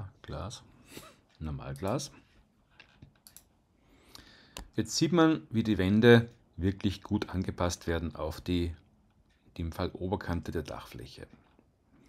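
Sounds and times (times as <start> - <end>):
faint computer mouse clicks: 3.0 - 3.5.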